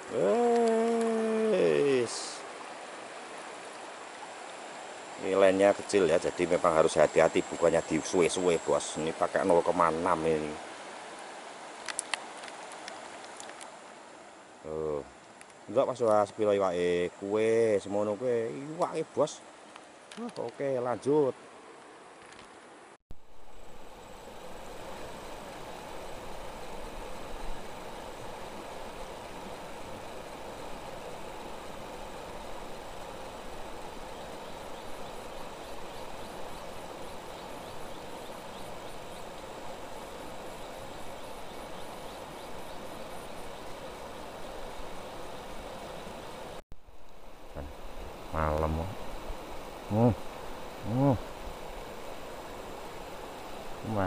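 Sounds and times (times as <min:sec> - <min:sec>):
river current rushing: 0:00.0 - 0:54.0
short voice sounds: 0:00.1 - 0:01.9, 0:50.8 - 0:51.2.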